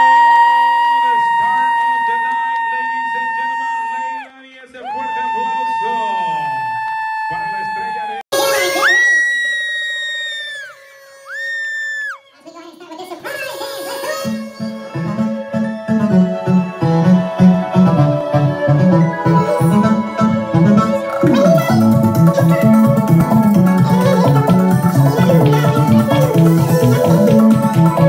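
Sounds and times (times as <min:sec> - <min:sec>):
long held high notes: 0:05.4 - 0:12.4, 0:13.6 - 0:28.0
music with steady beat: 0:14.3 - 0:28.0.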